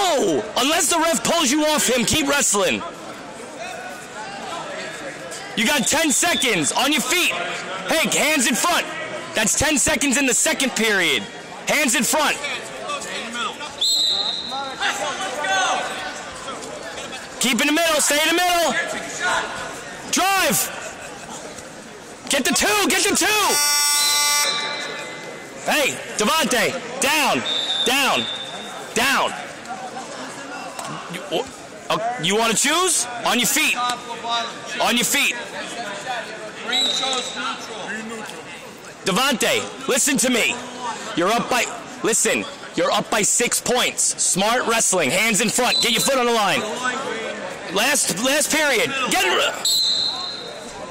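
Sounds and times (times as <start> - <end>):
people shouting and talking: 0.0 - 50.9
referee whistle blast: 13.8 - 14.7, 23.4 - 25.2, 27.4 - 28.7, 36.7 - 37.4, 49.6 - 50.6.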